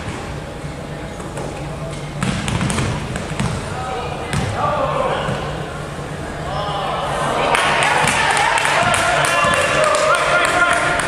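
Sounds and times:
basketball bouncing on hardwood floor: 2.2s - 3.6s, 4.3s - 4.5s
players calling out: 3.6s - 11.0s.

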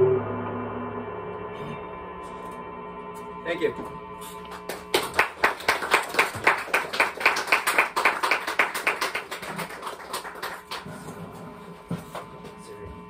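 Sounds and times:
lingering guitar ringing tones: 0.0s - 8.0s.

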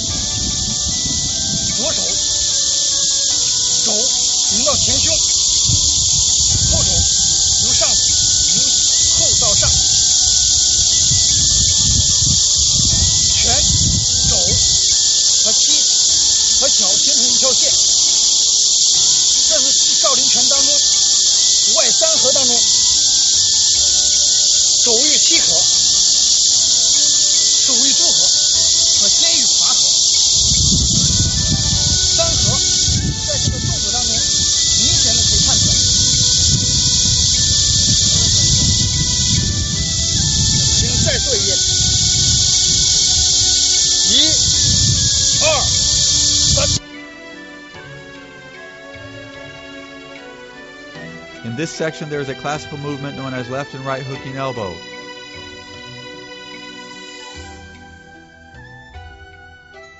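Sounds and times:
faint background music: 0.0s - 44.4s, 46.6s - 59.9s
low rumbling gusts: 0.0s - 46.8s
high-pitched insect chorus: 0.0s - 57.8s.

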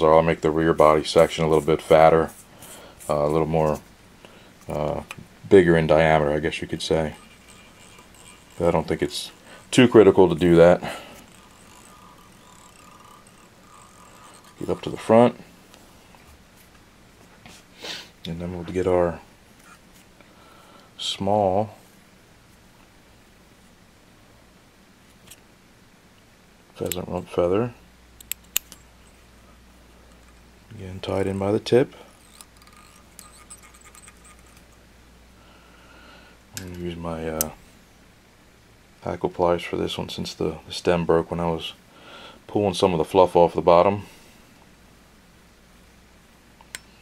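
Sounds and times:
faint high hum: 0.0s - 47.0s
faint steady hiss: 0.0s - 47.0s
thread ticks and squeaks: 6.2s - 15.8s, 30.1s - 34.9s.

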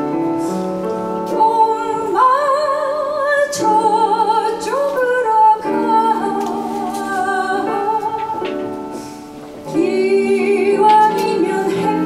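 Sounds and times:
piano chords: 0.0s - 12.0s
woman singing with vibrato: 1.4s - 9.0s, 9.7s - 12.0s.

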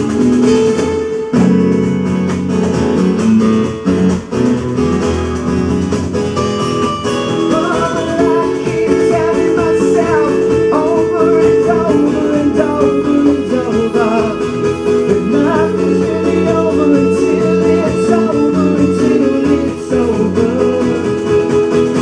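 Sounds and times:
strummed acoustic guitar: 0.0s - 22.0s
man singing: 7.3s - 22.0s.

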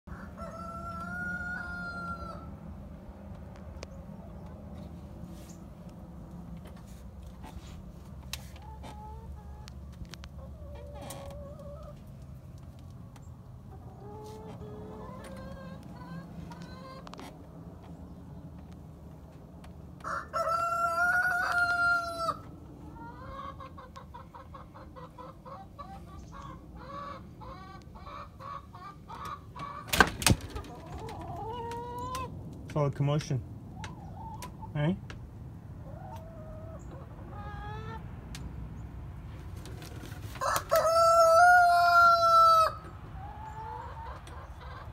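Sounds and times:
rooster crowing: 0.1s - 2.5s, 20.0s - 22.4s, 40.4s - 42.9s
chickens clucking: 0.1s - 44.9s.

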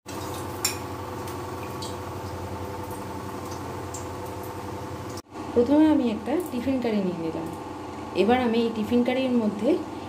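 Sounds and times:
machine hum: 0.1s - 10.0s.

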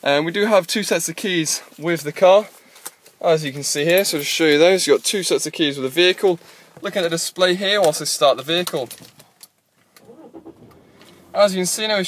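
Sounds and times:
faint diesel engine starting and idling: 10.0s - 12.0s.

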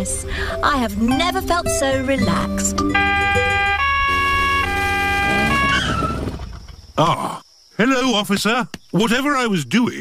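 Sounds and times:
two-tone siren: 2.9s - 6.3s.

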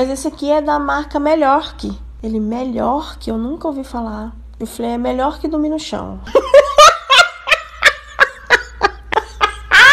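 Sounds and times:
cackling laugh sound effect: 6.3s - 9.9s.

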